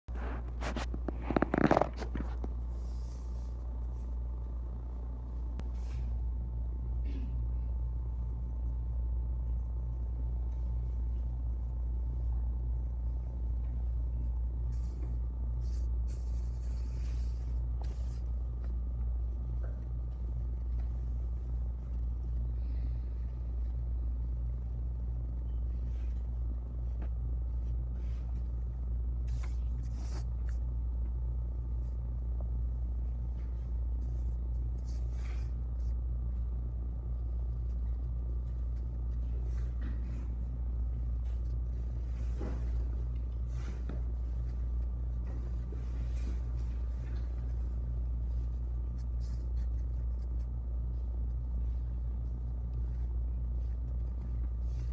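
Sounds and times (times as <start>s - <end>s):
faint hum: 0.0s - 54.9s
low room rumble: 0.0s - 54.9s
faint soft sounds: 0.1s - 54.9s.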